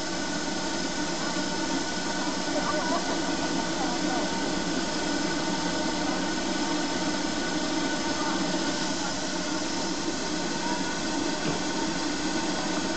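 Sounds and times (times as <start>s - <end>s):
steam hissing from locomotive: 0.0s - 12.9s.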